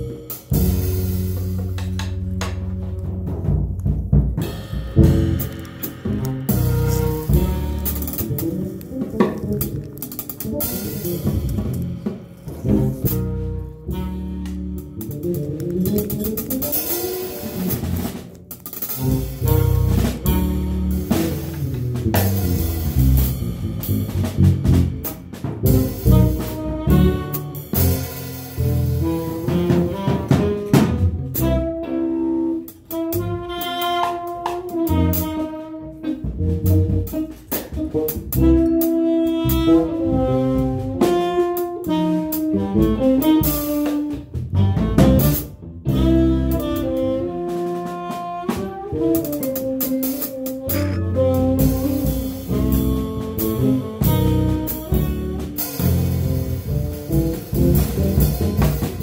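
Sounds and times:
drum kit with cymbals: 0.0s - 59.0s
electric bass: 0.0s - 59.0s
saxophone melody: 4.4s - 21.2s, 26.0s - 28.0s, 29.0s - 36.5s, 37.1s - 45.2s, 45.8s - 56.4s.

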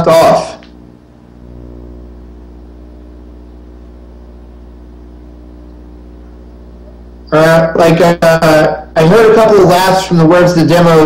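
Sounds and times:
buzzy electrical mains hum: 0.0s - 11.0s.

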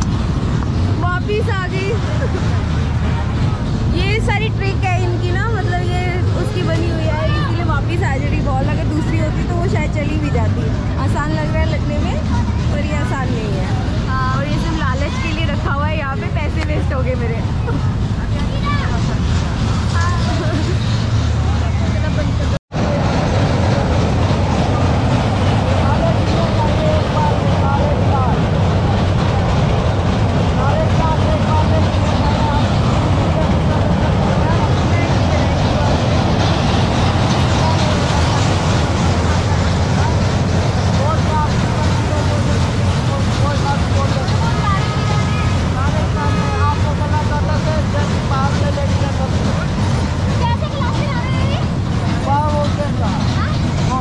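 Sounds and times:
crowd chatter: 0.0s - 54.0s
steady low rumble: 0.0s - 54.0s.

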